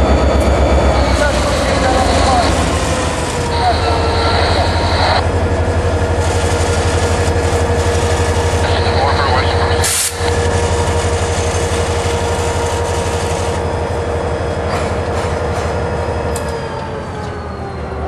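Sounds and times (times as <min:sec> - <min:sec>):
diesel locomotive rolling past: 0:00.0 - 0:18.0.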